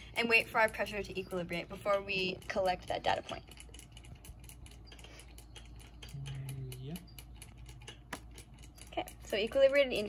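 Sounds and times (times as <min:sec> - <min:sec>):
faint clicks and ticks: 0:00.0 - 0:10.0.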